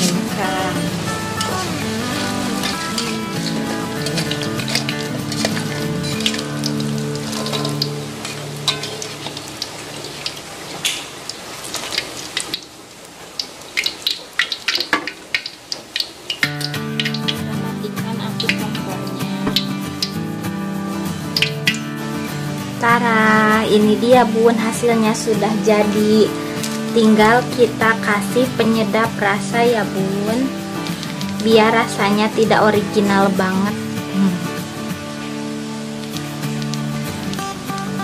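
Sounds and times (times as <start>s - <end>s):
background music: 0.0s - 9.8s, 16.5s - 38.0s
hot oil sizzling and crackling: 0.0s - 38.0s.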